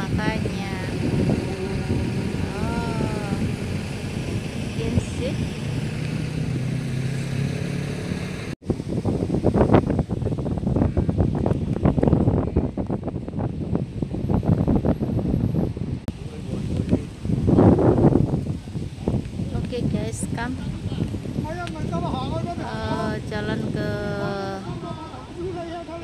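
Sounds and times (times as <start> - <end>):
boat engine humming: 0.0 - 8.6, 14.8 - 26.0
wind buffeting microphone: 0.0 - 26.0.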